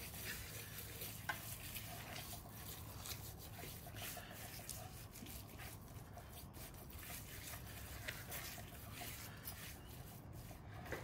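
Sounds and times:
hands rubbing salt into pork skin: 0:00.0 - 0:11.0.

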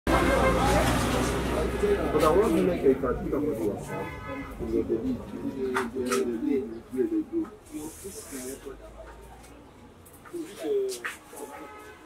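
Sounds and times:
people talking: 0:00.1 - 0:11.8
low rumble of road traffic: 0:00.1 - 0:12.0.

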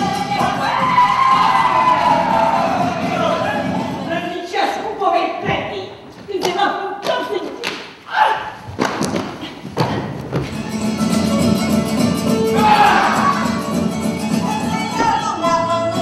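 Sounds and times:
music with voices singing: 0:00.0 - 0:04.1, 0:10.5 - 0:16.0
raised voices: 0:00.0 - 0:04.1, 0:12.5 - 0:13.7.

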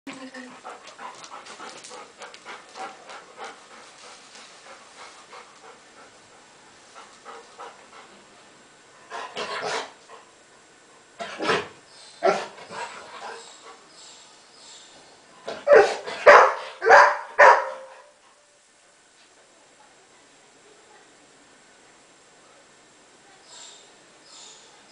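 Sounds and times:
dog panting: 0:00.2 - 0:08.3, 0:12.6 - 0:14.0
dog barking: 0:12.2 - 0:12.5, 0:15.6 - 0:18.1.

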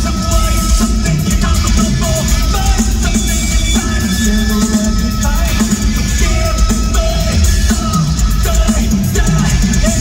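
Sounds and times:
live heavy metal band: 0:00.0 - 0:10.0
pounding drums: 0:00.0 - 0:10.0.

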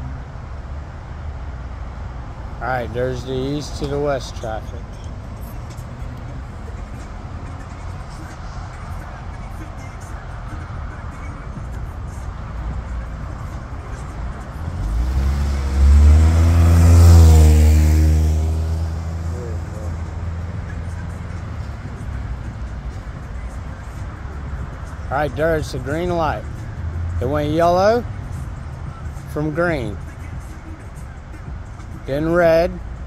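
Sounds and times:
road traffic: 0:00.0 - 0:33.0
car driving past close by: 0:01.2 - 0:25.2.

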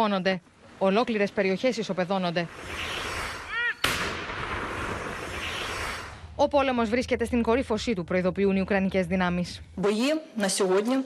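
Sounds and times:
long rolling echo: 0:02.1 - 0:09.7
howitzer blast: 0:03.2 - 0:06.4.

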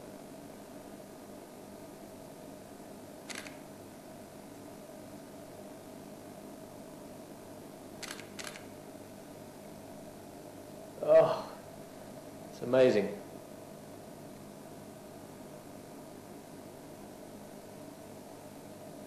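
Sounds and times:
steady low hum: 0:00.0 - 0:19.0
short clicks: 0:03.3 - 0:03.6, 0:08.0 - 0:08.7.

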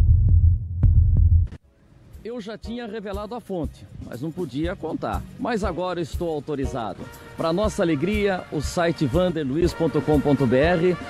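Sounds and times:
loud low throbbing rumble: 0:00.0 - 0:01.5
heartbeat double thumps: 0:00.0 - 0:01.6.

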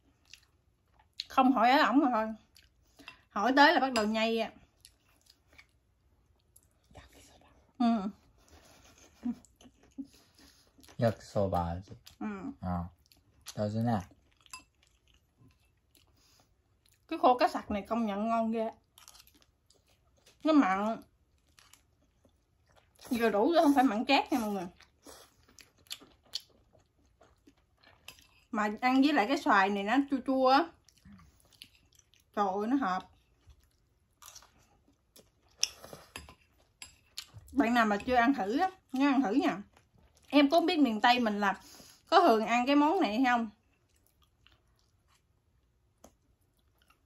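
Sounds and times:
faint eating sounds: 0:00.0 - 0:47.0
people chewing food: 0:00.0 - 0:47.0.

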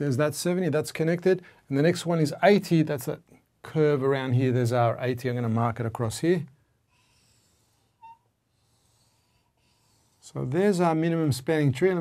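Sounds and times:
marker squeak: 0:08.0 - 0:08.3.

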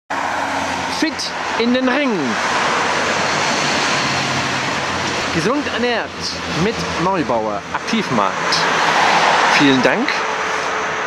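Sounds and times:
street traffic: 0:00.1 - 0:11.0
wind: 0:00.1 - 0:11.0
person speaking: 0:00.9 - 0:02.4, 0:05.3 - 0:08.7, 0:09.5 - 0:10.2.

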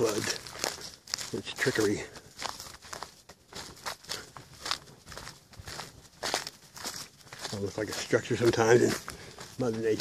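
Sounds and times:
footsteps through dry leaves: 0:00.0 - 0:10.0.

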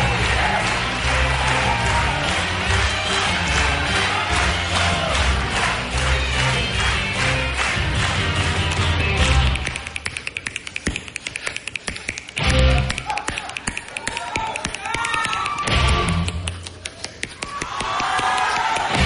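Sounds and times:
backing music with steady beat: 0:00.0 - 0:16.8
finger snapping into microphone: 0:09.4 - 0:19.0.

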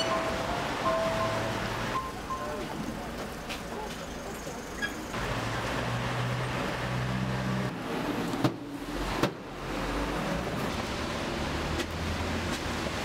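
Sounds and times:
vehicle engine humming: 0:00.0 - 0:07.9
traffic noise: 0:00.0 - 0:13.0.

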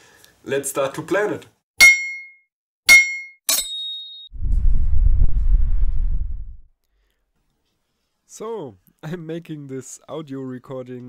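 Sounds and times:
ringing metallic clangs: 0:01.8 - 0:04.3
low rumble: 0:04.4 - 0:06.7.

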